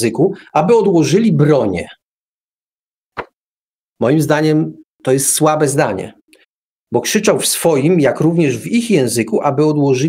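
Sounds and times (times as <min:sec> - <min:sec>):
short pop: 0:03.2 - 0:03.4.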